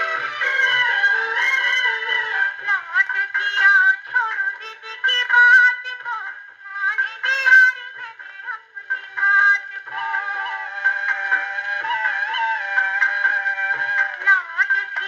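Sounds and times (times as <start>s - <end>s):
old gramophone song record: 0.0s - 15.0s.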